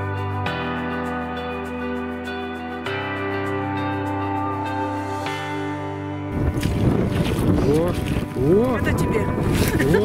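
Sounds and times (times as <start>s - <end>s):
background music: 0.0s - 10.0s
wind buffeting microphone: 6.3s - 10.0s.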